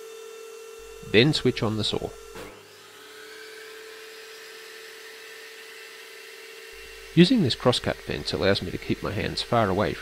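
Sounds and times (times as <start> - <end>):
dust collector humming: 0.0 - 10.0
table saw motor whining: 0.0 - 10.0.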